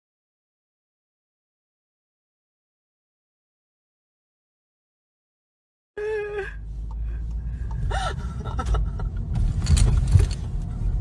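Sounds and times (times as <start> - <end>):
car engine and road rumble: 6.0 - 11.0
clicks and rustles: 9.3 - 10.7.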